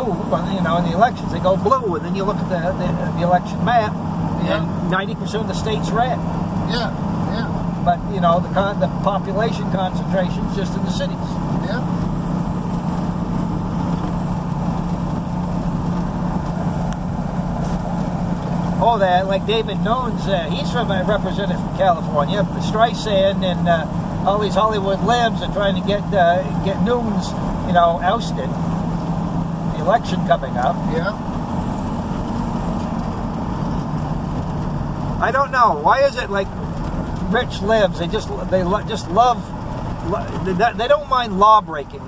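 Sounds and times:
tyres on gravel road: 0:00.0 - 0:42.0
vehicle engine hum: 0:00.0 - 0:42.0.

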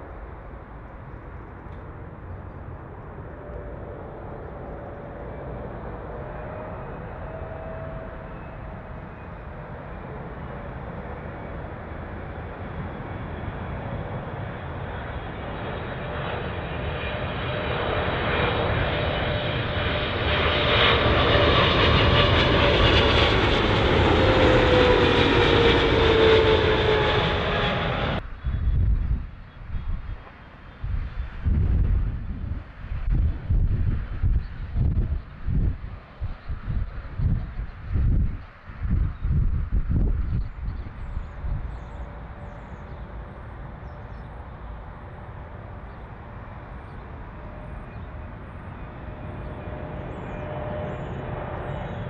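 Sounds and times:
jet airliner approaching: 0:00.0 - 0:52.0
wind on microphone: 0:21.3 - 0:42.7.

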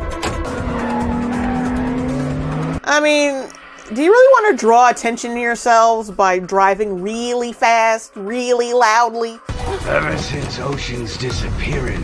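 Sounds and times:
sports car engines running: 0:00.0 - 0:02.9.

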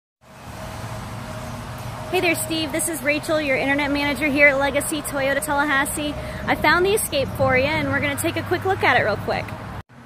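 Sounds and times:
road traffic with low hum: 0:00.2 - 0:10.0.

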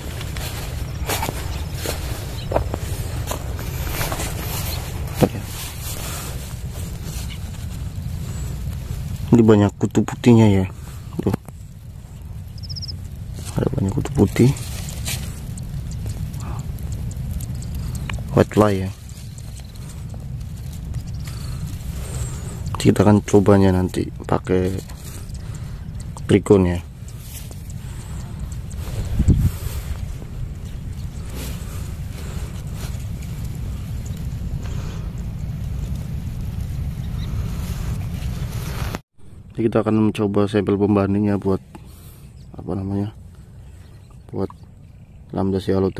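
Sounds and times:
leaves clicking when handled: 0:00.0 - 0:39.0
wind buffeting microphone: 0:00.0 - 0:39.5.

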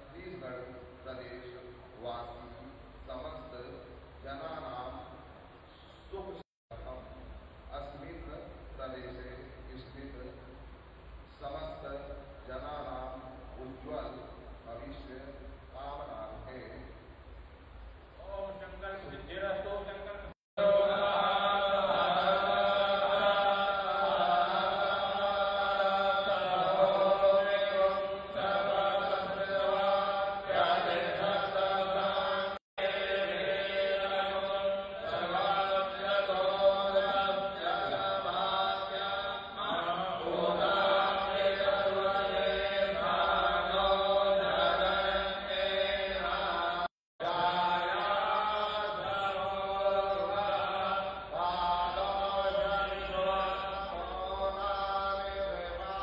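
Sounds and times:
man chanting into a microphone: 0:00.0 - 0:10.6, 0:11.3 - 0:17.1, 0:18.2 - 0:56.0.

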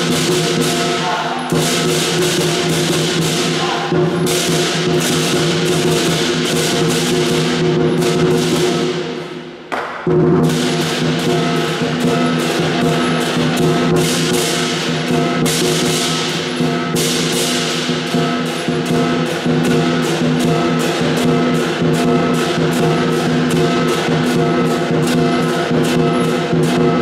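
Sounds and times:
lion drum beating: 0:00.0 - 0:09.3, 0:09.9 - 0:27.0
cymbals crashing: 0:00.0 - 0:27.0.

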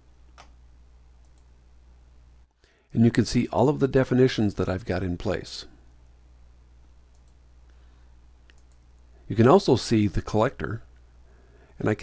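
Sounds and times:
steady low hum: 0:00.0 - 0:12.0
computer mouse clicks: 0:01.2 - 0:01.5, 0:07.1 - 0:07.4, 0:08.4 - 0:09.0.

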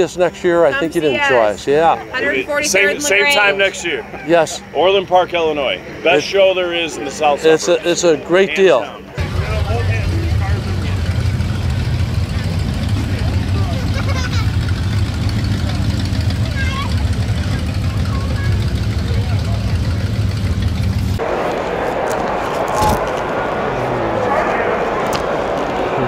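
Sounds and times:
car engine rumbling: 0:09.0 - 0:26.0.

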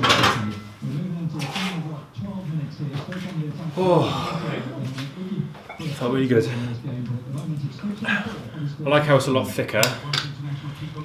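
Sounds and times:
man talking indistinctly: 0:00.0 - 0:11.0.

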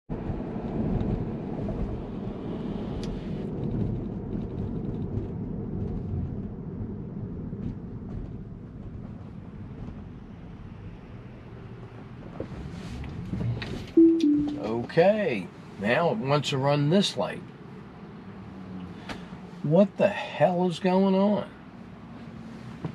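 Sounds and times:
road and tyre noise in car: 0:00.1 - 0:22.9.

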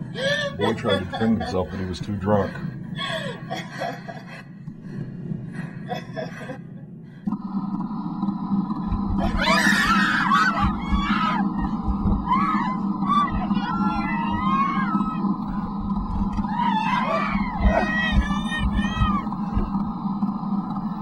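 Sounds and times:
steady low hum: 0:00.0 - 0:21.0
voices screaming: 0:09.2 - 0:15.6, 0:16.4 - 0:19.4.

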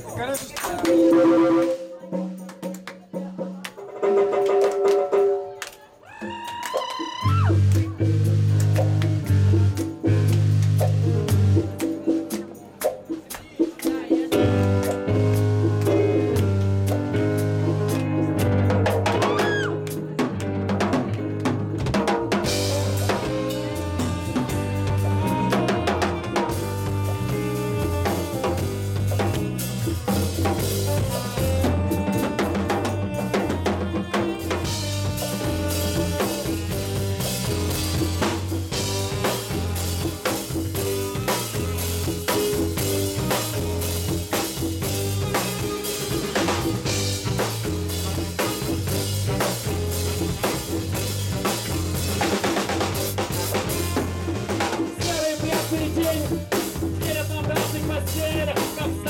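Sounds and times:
live band playing: 0:00.0 - 0:59.0
electric guitar single notes: 0:00.8 - 0:02.2
drum kit hits: 0:14.3 - 0:59.0.

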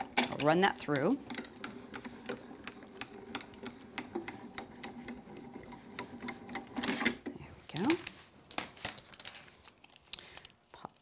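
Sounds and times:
paper rustling: 0:07.7 - 0:10.5.

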